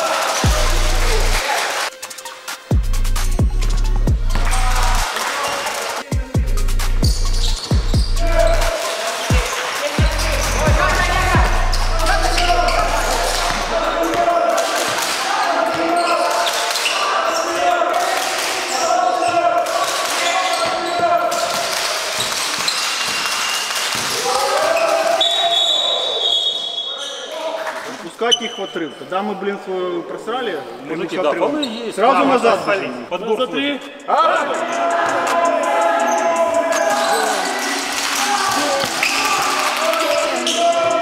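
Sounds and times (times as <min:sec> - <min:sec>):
players shouting in echoing hall: 0:00.0 - 0:01.9, 0:04.3 - 0:06.4, 0:07.0 - 0:41.0
referee's whistle: 0:07.1 - 0:08.7, 0:11.4 - 0:13.5, 0:24.8 - 0:27.3, 0:38.9 - 0:39.5, 0:40.2 - 0:41.0.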